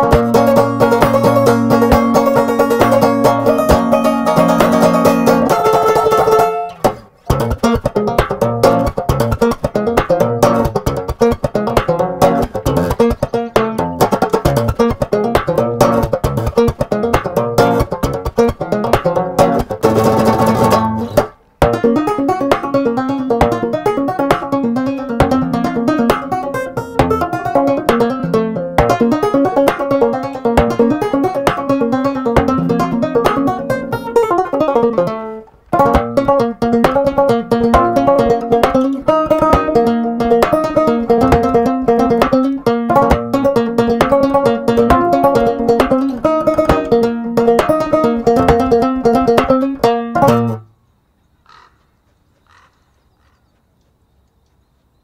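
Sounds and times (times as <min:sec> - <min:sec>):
guitar-banjo plucked fingerstyle: 0:00.0 - 0:50.7.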